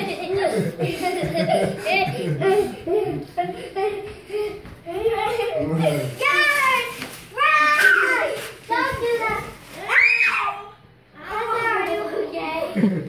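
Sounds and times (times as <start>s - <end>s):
children shouting in play: 4.9s - 11.6s.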